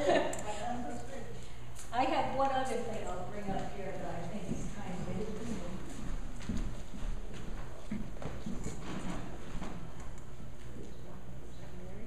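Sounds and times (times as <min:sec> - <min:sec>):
footsteps on wooden floor: 0:03.5 - 0:10.0.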